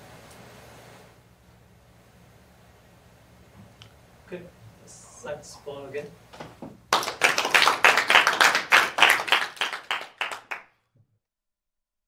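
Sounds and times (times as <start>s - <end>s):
audience applauding: 6.4s - 10.7s.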